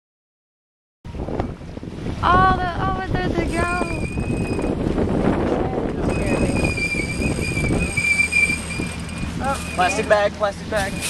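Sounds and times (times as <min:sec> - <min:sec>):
boat engine running: 0:01.1 - 0:11.0
wind buffeting microphone: 0:01.1 - 0:11.0
thin high whine: 0:03.4 - 0:04.8.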